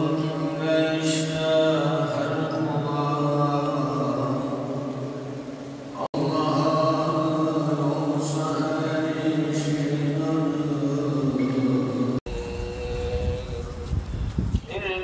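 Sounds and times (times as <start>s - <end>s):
man chanting: 0.0s - 5.1s, 6.0s - 15.0s
wind rumble on microphone: 12.3s - 15.0s.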